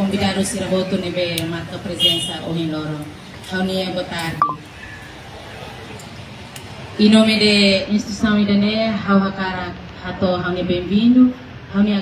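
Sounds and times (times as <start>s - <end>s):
short high beep: 4.4s - 4.6s.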